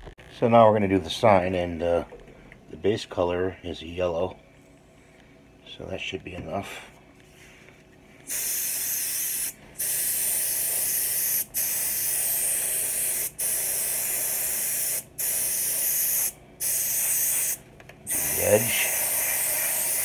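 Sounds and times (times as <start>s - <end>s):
spray hissing: 8.3s - 20.0s.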